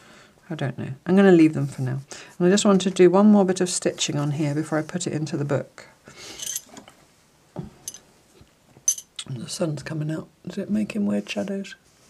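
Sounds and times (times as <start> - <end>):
soft fabric rustle: 1.4 - 5.2, 10.9 - 12.0.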